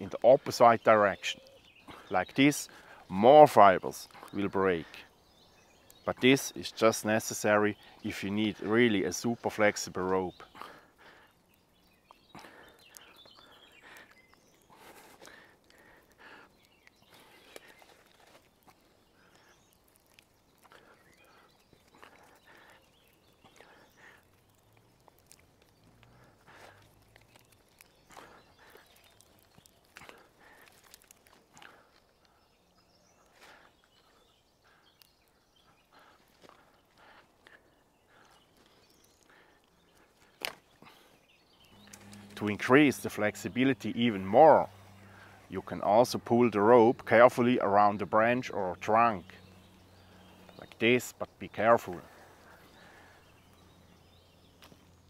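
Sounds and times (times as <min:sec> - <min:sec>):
branch crackling as twisted: 0:00.0 - 0:55.0.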